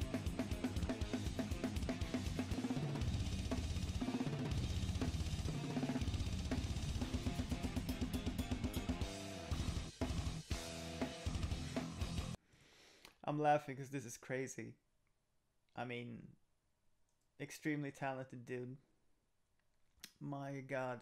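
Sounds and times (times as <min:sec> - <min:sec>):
death metal band track: 0:00.0 - 0:12.4
fast drum kit playing: 0:00.0 - 0:12.4.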